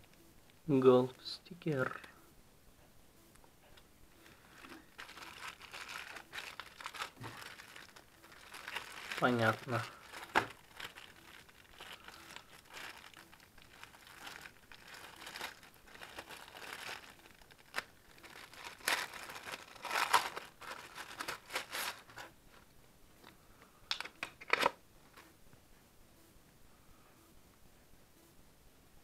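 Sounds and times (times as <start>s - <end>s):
sharp plastic crackles: 4.2s - 22.6s, 23.2s - 24.8s
plastic bags crinkling: 4.2s - 22.7s.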